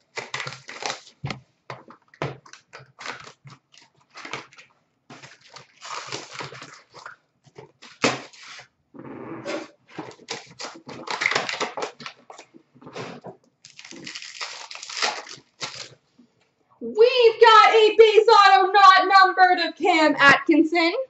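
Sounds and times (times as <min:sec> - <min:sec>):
wrapper crinkling: 0:00.0 - 0:08.7, 0:09.6 - 0:16.0.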